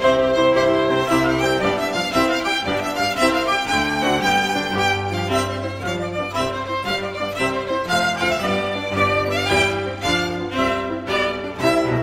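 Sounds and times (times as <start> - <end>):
fiddle playing dance tune: 0.0 - 12.0.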